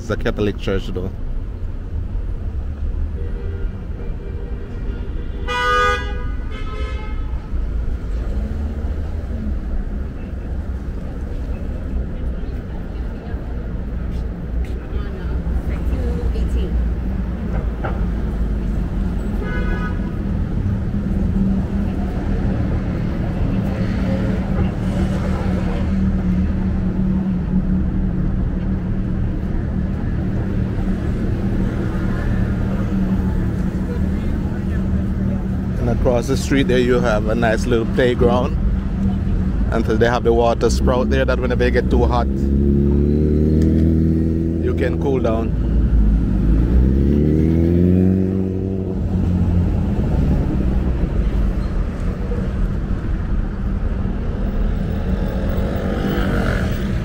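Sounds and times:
engine hum: 0.0s - 57.0s
traffic rumble: 0.0s - 57.0s
car horns honking: 3.1s - 7.5s, 19.2s - 20.3s.

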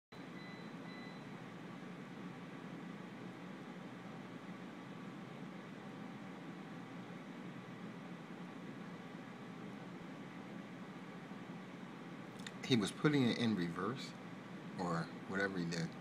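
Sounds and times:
room hum and hiss: 0.2s - 16.0s.

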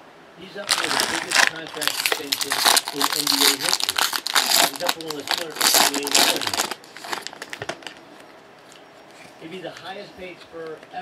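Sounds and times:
man talking: 0.4s - 6.8s, 9.4s - 11.0s
foil wrapper crinkling and tearing: 0.6s - 8.0s.

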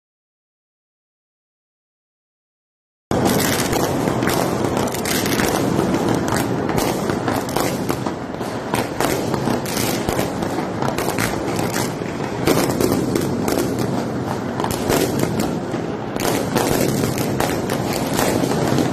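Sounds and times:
fireworks bangs and crackles: 3.1s - 18.9s.

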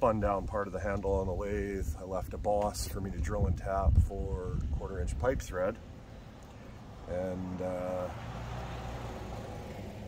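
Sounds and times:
vehicle engine rumbling: 0.0s - 10.0s.

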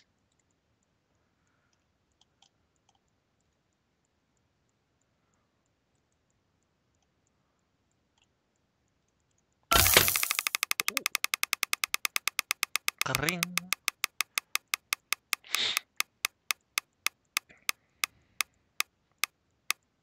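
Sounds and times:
spinning reel ticking: 9.7s - 18.5s.

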